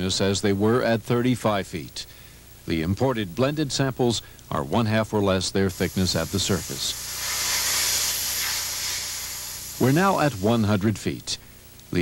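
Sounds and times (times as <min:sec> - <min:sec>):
high hiss of pressure chamber: 0:05.7 - 0:10.7.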